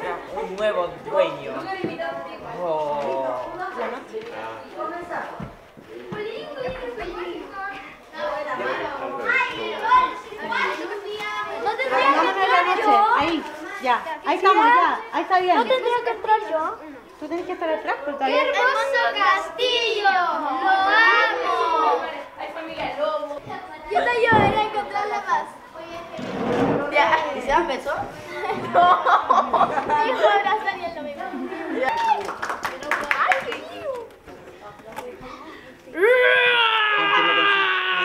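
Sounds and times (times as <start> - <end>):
children talking and calling out: 0.0 - 38.0.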